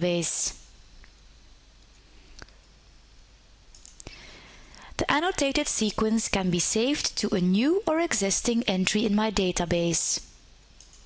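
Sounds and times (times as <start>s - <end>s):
person speaking: 0.0s - 0.6s, 4.9s - 10.2s
soft breath: 4.0s - 5.0s.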